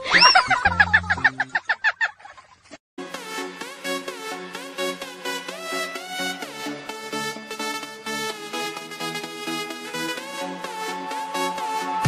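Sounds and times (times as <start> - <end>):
rapid cackle: 0.0 - 2.7.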